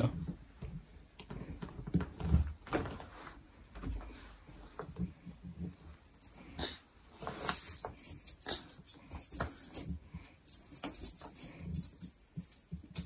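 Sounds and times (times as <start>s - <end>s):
clothes rustling: 0.7s - 13.0s.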